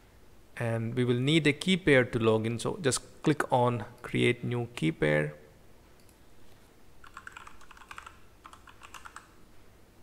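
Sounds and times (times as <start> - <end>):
typing on computer keyboard: 7.0 - 9.4.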